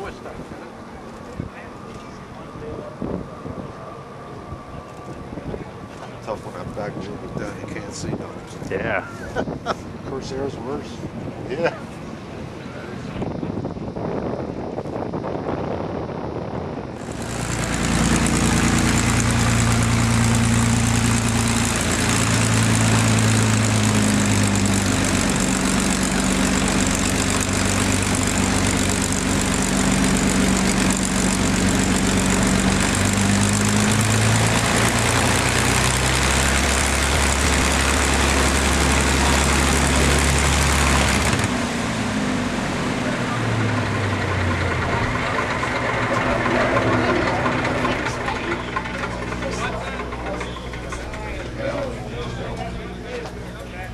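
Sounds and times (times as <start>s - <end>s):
aircraft engine roaring: 0.0s - 53.9s
propeller slowing down: 0.0s - 53.9s.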